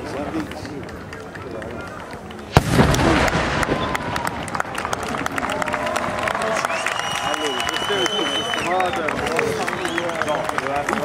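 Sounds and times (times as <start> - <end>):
spectators talking quietly: 0.0 - 11.0
firework bursting with a bang: 2.5 - 4.0
firework crackling pops: 2.5 - 4.6.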